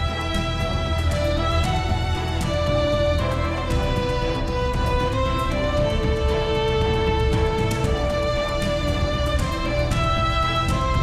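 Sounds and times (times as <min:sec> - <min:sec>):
tv theme music with strings: 0:00.0 - 0:11.0.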